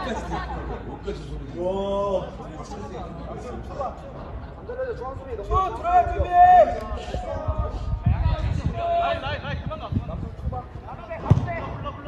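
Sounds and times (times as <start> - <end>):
sharp thump: 11.2 - 11.8.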